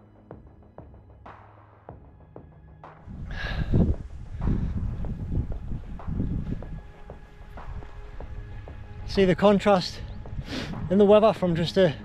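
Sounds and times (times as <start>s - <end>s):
quiet background music: 0.0s - 12.0s
wind buffeting microphone: 3.1s - 12.0s.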